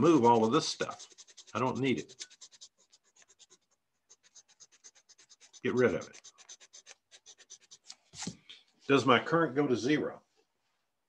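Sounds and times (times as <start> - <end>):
pen scribbling on paper: 0.0 - 8.3.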